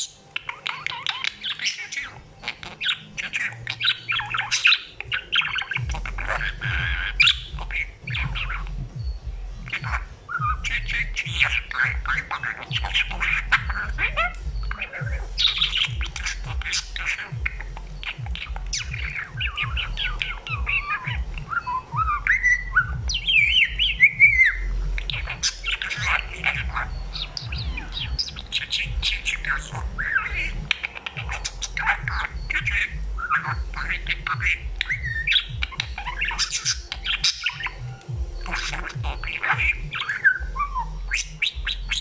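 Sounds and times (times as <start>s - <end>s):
budgerigar chattering: 0.0s - 42.0s.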